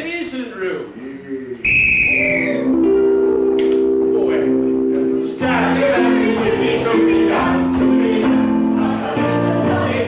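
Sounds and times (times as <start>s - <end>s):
police whistle blast: 1.6s - 2.7s.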